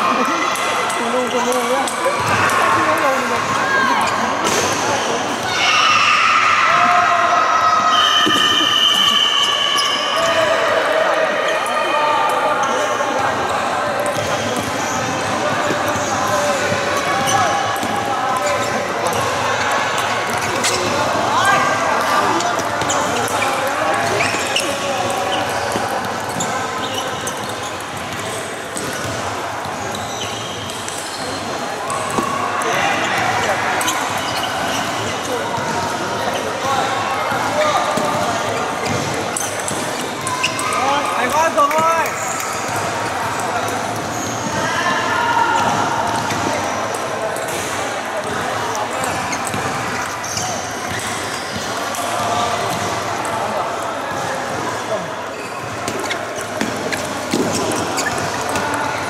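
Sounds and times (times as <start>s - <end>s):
indistinct background chatter: 0.0s - 59.0s.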